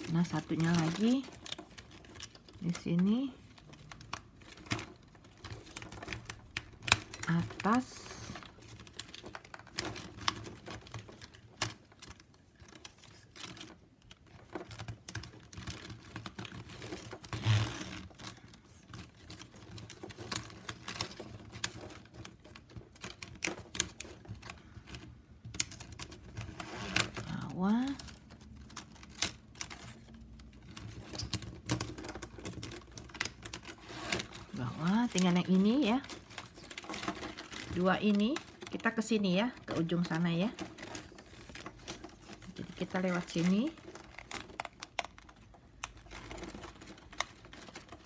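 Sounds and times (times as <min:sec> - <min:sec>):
plastic strapping clicking and rubbing: 0:00.0 - 0:48.0
plastic strapping scrape: 0:00.0 - 0:48.0.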